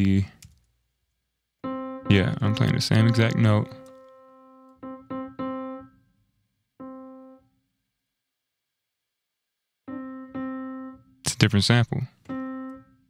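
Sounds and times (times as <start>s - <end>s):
muted piano note: 1.6s - 5.8s.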